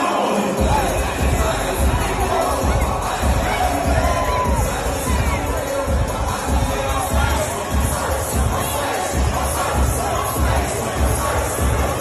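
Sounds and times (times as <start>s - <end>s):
crowd cheering and shouting: 0.0s - 12.0s
party music with heavy bass: 0.0s - 12.0s.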